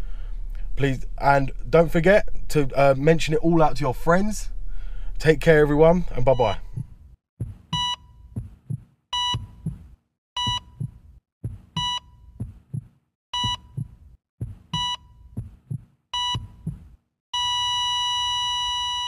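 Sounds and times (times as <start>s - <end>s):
heart monitor beeps: 6.2s - 9.8s, 10.4s - 14.0s, 14.7s - 19.0s
heartbeat thumps: 6.3s - 17.0s.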